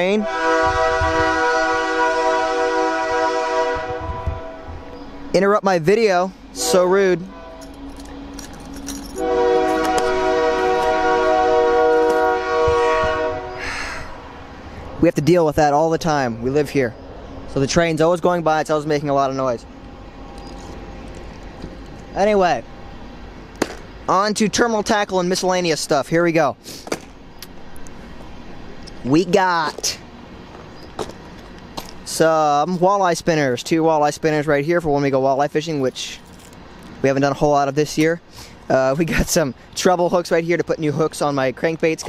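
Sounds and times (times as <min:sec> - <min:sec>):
train horn: 0:00.0 - 0:05.0, 0:06.6 - 0:07.8, 0:09.1 - 0:13.8
train rumbling by: 0:00.0 - 0:42.0.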